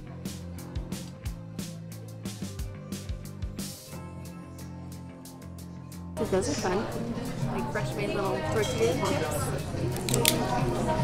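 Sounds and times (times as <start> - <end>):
soft background music: 0.0 - 11.0
woman talking: 6.2 - 9.6.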